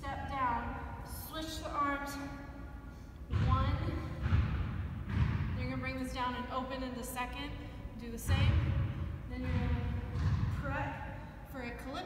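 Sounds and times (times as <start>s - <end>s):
dull low thuds: 3.3s - 6.0s, 8.2s - 11.0s.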